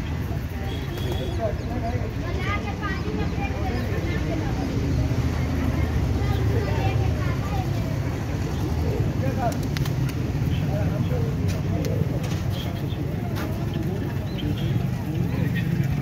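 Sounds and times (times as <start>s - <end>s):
low rumble of traffic: 0.0s - 16.0s
people talking: 0.0s - 16.0s.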